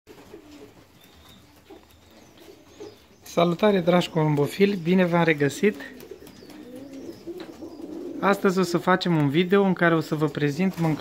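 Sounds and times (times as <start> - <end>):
pigeons cooing softly: 0.1 - 11.0.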